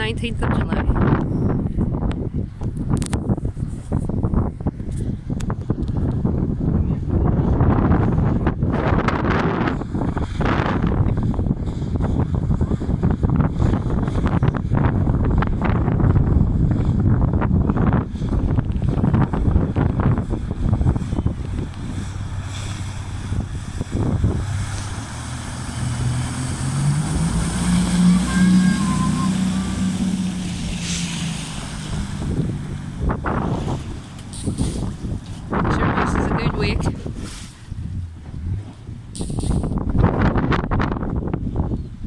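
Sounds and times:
speedboat engine drone: 0:00.0 - 0:42.0
wind buffeting microphone: 0:00.0 - 0:42.0.

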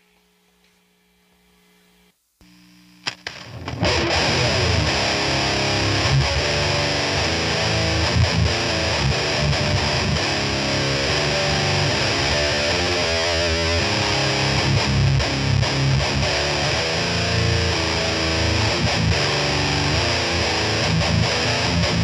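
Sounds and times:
distorted electric guitar riffing: 0:03.2 - 0:22.0.

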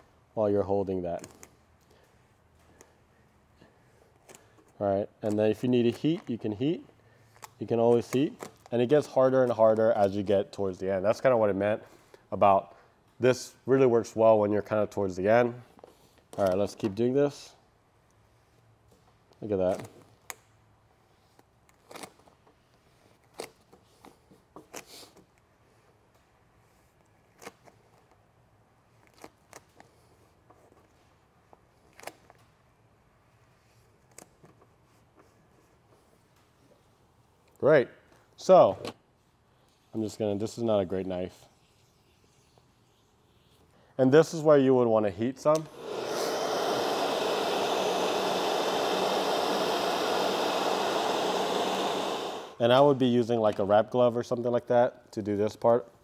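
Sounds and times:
squeegee scraping over vinyl film: 0:39.2 - 0:43.7
heat gun blowing air: 0:45.5 - 0:52.7.

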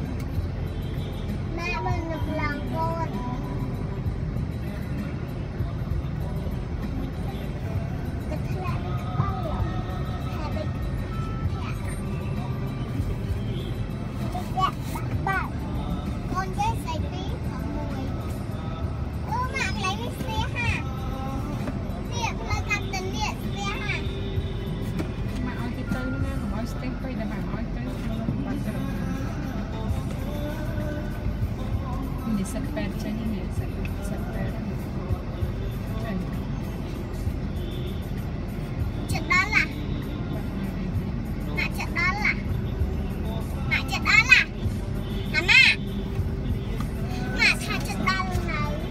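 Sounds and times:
low engine rumble: 0:00.0 - 0:48.9
motorbikes passing: 0:00.0 - 0:48.9
music: 0:00.0 - 0:48.9
voices: 0:00.0 - 0:48.9.

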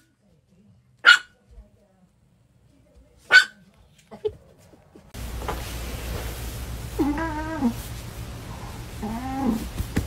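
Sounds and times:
cat meowing: 0:07.0 - 0:07.8.

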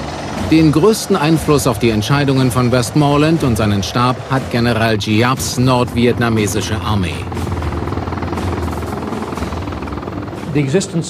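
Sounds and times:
helicopter rotor beat: 0:00.0 - 0:11.0.

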